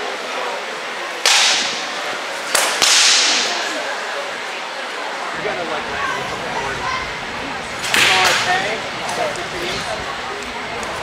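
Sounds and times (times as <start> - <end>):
rattan weapons cracking: 2.6 - 3.6.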